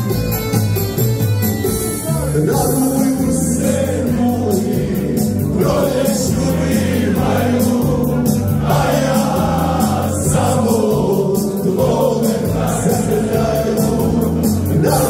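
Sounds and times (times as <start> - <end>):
keyboard accompaniment: 0.0 - 15.0
sustained bass notes: 0.0 - 15.0
steady beat: 1.6 - 15.0
man singing folk song: 2.2 - 7.6, 11.4 - 15.0.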